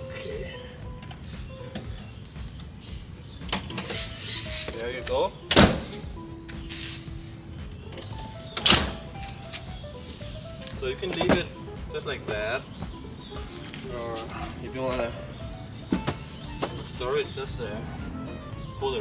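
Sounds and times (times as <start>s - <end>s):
car seat clunking into mounts: 4.7s - 6.1s, 10.9s - 11.6s, 15.8s - 17.2s.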